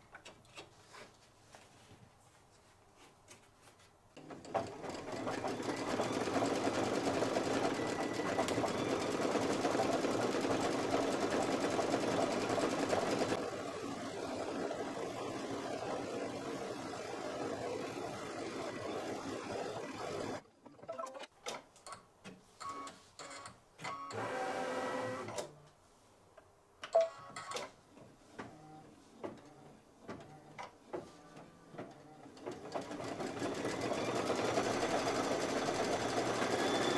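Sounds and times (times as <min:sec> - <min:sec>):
embroidery machine stitching: 0:04.2 - 0:20.4, 0:31.8 - 0:36.9.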